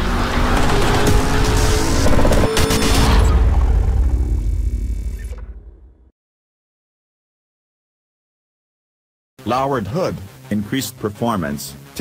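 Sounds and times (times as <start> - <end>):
deep rumble sound effect: 0.0 - 6.1.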